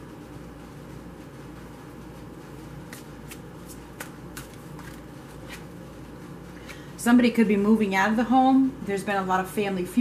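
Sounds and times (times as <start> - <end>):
cards being shuffled: 2.9 - 5.8.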